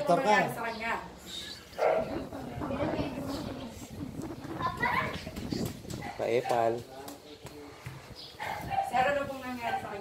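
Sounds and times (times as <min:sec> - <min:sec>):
indistinct background talking: 0:00.0 - 0:06.2.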